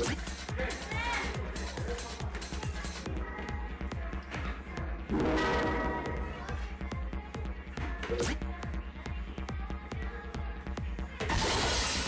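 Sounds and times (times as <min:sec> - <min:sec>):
electronic dance music: 0:00.0 - 0:03.2
dart machine hit sound effect: 0:05.1 - 0:06.2.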